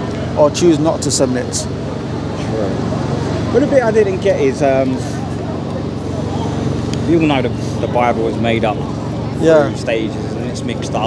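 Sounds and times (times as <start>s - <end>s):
faint distant voices: 0.0s - 11.0s
low city drone: 0.0s - 11.0s.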